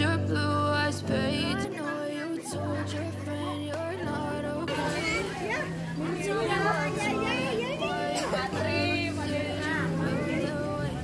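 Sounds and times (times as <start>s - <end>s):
background pop music: 0.0s - 11.0s
people calling out in a pool: 1.2s - 11.0s.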